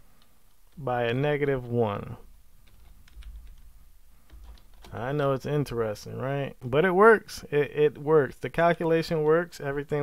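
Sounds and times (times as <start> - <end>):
keyboard typing: 2.6 - 5.0.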